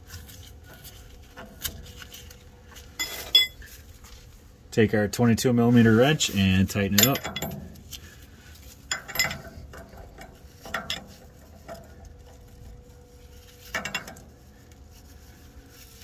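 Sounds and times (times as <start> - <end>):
wrench clinking on metal fitting: 3.0 - 3.6, 6.8 - 7.6, 8.9 - 11.1.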